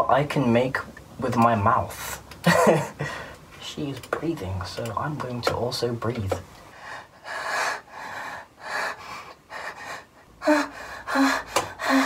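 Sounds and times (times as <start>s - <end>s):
heavy breathing: 3.0s - 3.4s, 6.7s - 12.0s.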